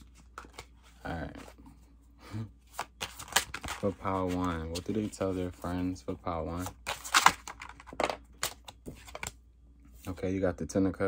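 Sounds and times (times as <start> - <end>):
cards being shuffled: 0.0 - 1.6, 2.6 - 9.4.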